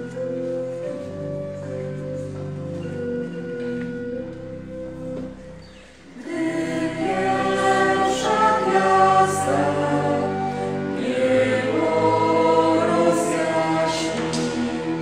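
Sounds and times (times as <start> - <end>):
mixed choir singing: 6.2 - 15.0.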